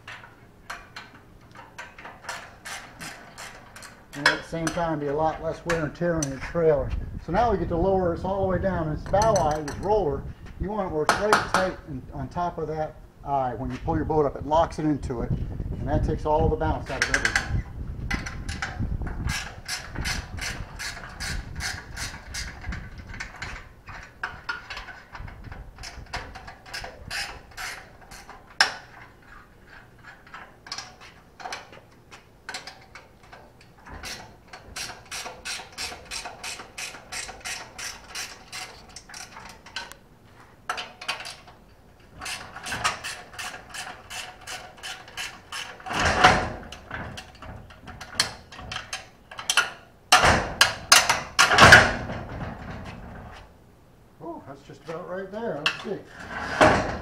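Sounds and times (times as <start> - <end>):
metal clunk: 55.6 - 57.0.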